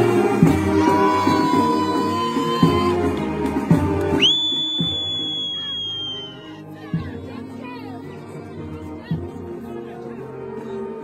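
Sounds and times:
brass band playing: 0:00.0 - 0:11.0
high shrill whistle note: 0:04.2 - 0:06.4.

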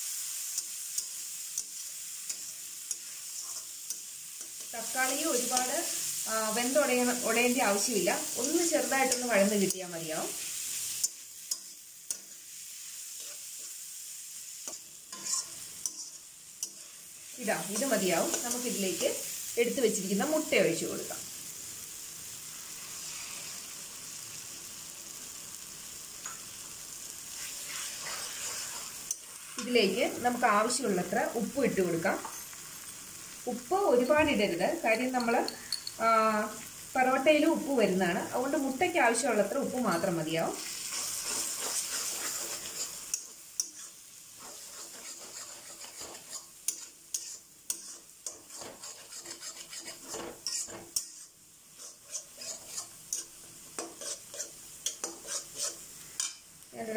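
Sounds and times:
vegetables sizzling in a wok: 0:00.0 - 0:56.9
metal spatula stirring: 0:00.5 - 0:05.7, 0:13.2 - 0:13.8, 0:14.6 - 0:19.0, 0:27.4 - 0:29.8, 0:39.8 - 0:56.5.

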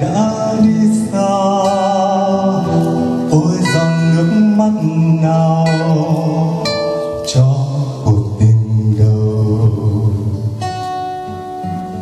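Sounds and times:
man singing into microphone: 0:00.0 - 0:10.8
acoustic guitar: 0:00.0 - 0:12.0.

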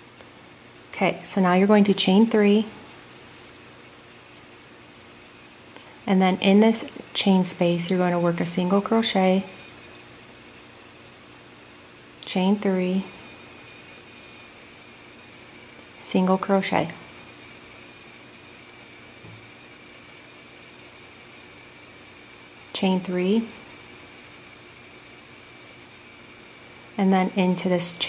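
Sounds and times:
faint high-pitched whine: 0:00.0 - 0:28.0
room tone hiss: 0:00.0 - 0:28.0.

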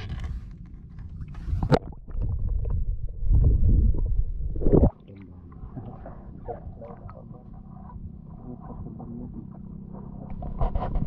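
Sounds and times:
muffled seawater rumbling and gurgling: 0:00.0 - 0:11.0.

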